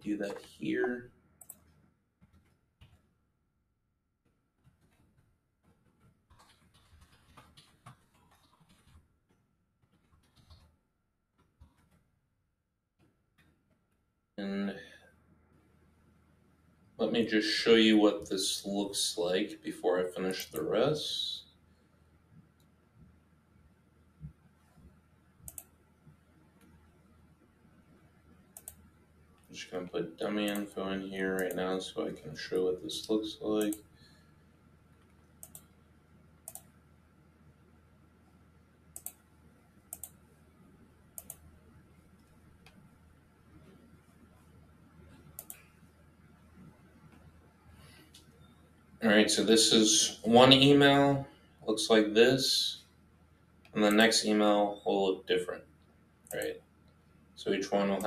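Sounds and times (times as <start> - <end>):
computer mouse clicks: 1.4 - 3.0, 5.8 - 9.0, 9.9 - 10.7, 24.8 - 26.8, 28.6 - 29.5, 30.4 - 30.7, 31.3 - 31.7, 35.0 - 35.8, 36.4 - 36.8, 39.0 - 39.2, 39.9 - 40.3, 41.2 - 41.5, 42.1 - 42.9, 45.1 - 45.9
keyboard ticks: 31.4 - 31.7.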